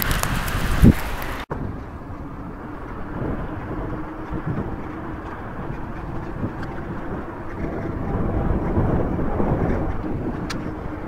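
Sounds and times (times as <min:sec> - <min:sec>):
wheels rolling on pavement: 0:00.0 - 0:11.0
wind on microphone: 0:00.0 - 0:11.0.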